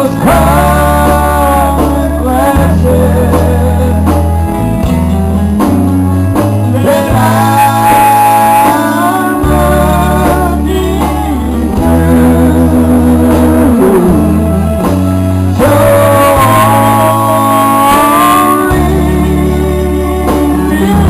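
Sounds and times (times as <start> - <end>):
guitar and bass accompaniment: 0.0 - 21.0
man singing a country song: 0.0 - 21.0.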